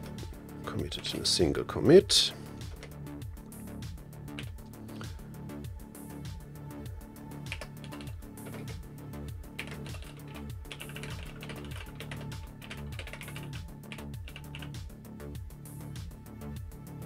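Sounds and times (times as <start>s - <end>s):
background music with steady beat: 0.0s - 17.0s
typing on computer keyboard: 7.5s - 8.7s, 9.6s - 14.8s.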